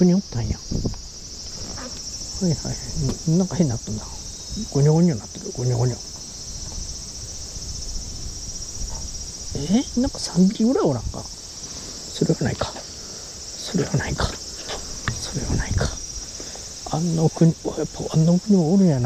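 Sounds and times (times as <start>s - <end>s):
insects chirring: 0.0s - 19.0s.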